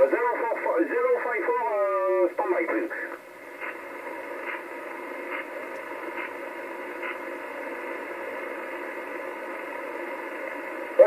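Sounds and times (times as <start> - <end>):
radio static hiss: 0.0 - 11.0.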